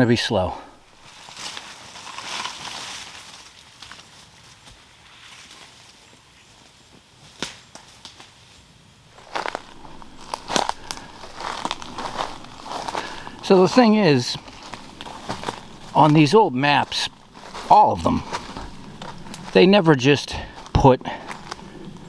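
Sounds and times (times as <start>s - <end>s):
leaves and branches rustling: 0.3s - 22.0s
footsteps through brush: 0.4s - 7.9s, 9.1s - 22.0s
twigs cracking underfoot: 0.7s - 4.8s, 9.2s - 19.8s, 20.5s - 22.0s.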